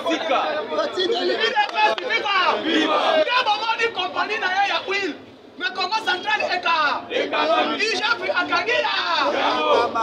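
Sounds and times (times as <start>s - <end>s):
man speaking animatedly: 0.0s - 10.0s
voices chattering: 0.0s - 10.0s.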